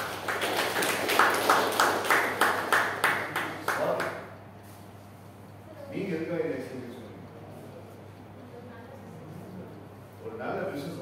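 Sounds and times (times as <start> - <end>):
hands clapping in a hall: 0.0 - 4.4.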